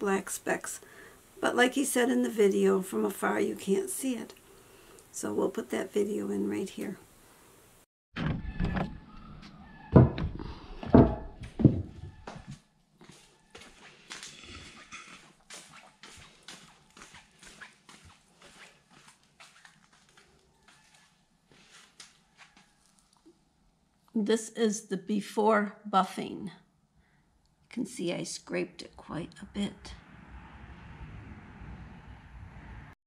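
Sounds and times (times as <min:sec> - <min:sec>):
low rumble: 0:29.3 - 0:33.0.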